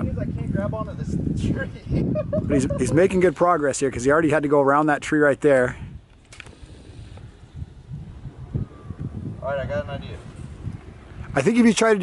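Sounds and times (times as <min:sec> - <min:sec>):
wind rumble on microphone: 0:00.0 - 0:04.4, 0:05.7 - 0:12.0.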